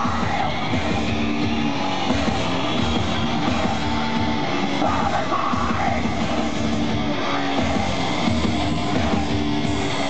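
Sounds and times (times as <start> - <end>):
shouted vocal: 0.0 - 1.7, 3.2 - 8.3
distorted electric guitars: 0.0 - 10.0
drums: 0.0 - 10.0.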